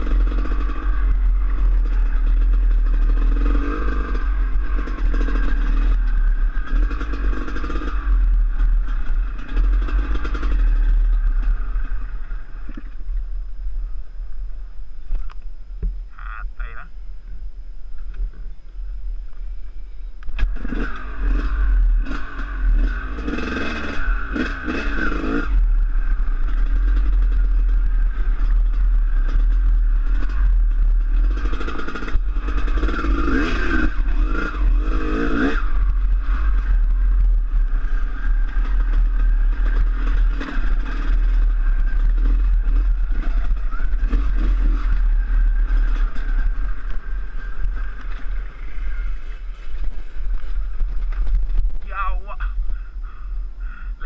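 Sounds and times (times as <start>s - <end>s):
dirt bike engine revving: 0.0s - 13.0s, 20.4s - 51.4s
low rumble of wind: 0.0s - 54.0s.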